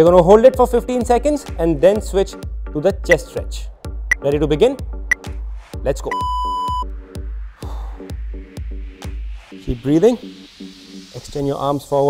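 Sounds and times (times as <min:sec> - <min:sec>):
electronic music with steady beat: 0:00.0 - 0:12.0
electronic timer beep: 0:06.1 - 0:06.9.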